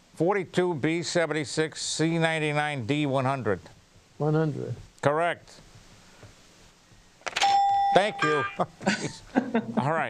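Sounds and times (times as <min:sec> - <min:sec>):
bell-like ding: 0:07.4 - 0:08.6.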